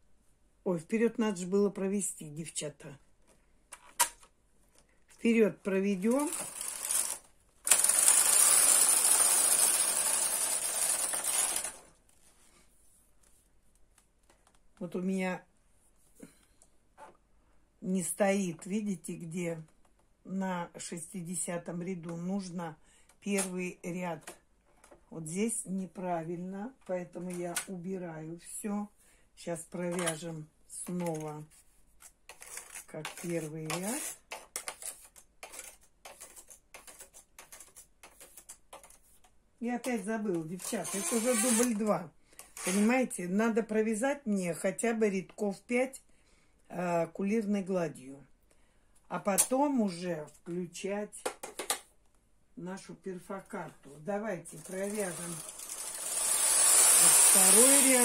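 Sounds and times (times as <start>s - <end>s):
knitting machine carriage running: 6.3s - 11.8s, 54.6s - 58.0s.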